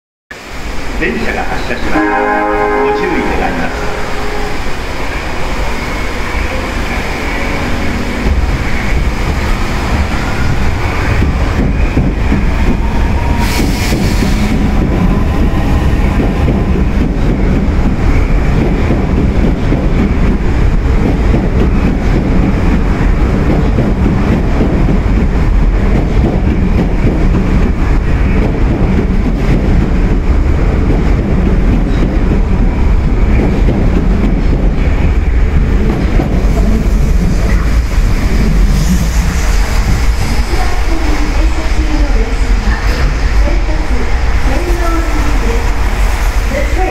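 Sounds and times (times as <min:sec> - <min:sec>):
subway train wheels rumbling: 0:00.3 - 0:46.9.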